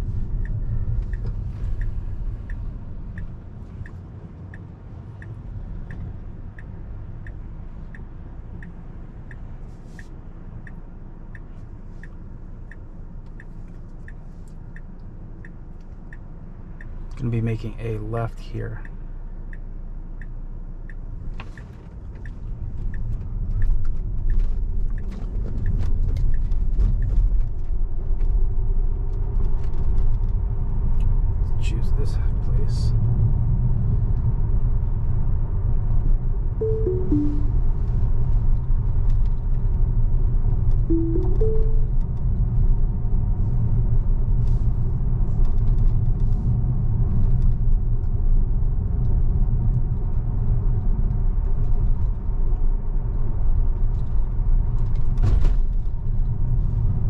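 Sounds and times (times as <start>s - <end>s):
road and tyre rumble: 0.0s - 36.6s, 37.6s - 40.9s, 41.9s - 57.0s
falling electronic chime: 36.6s - 37.6s, 40.9s - 41.9s
rising two-note chime: 36.6s - 37.6s, 40.9s - 41.9s.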